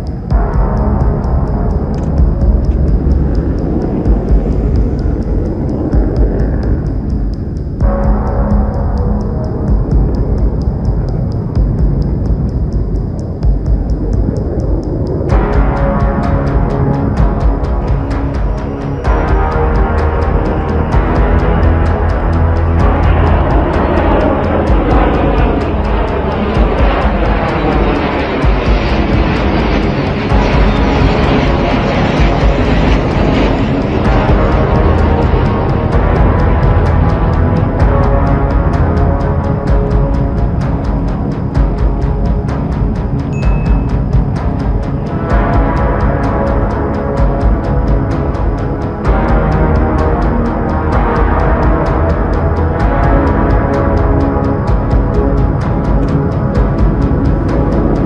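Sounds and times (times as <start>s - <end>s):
jet engines passing overhead: 0.0s - 58.0s
music with ticking beat: 0.0s - 58.0s.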